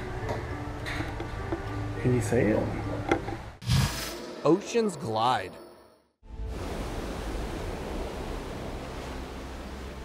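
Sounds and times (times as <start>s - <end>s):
faint background music: 0.0s - 3.6s.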